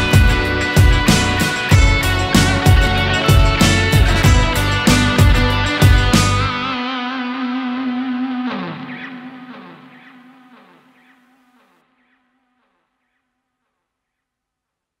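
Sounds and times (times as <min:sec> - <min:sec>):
echoing downward guitar slides: 0:00.0 - 0:11.3.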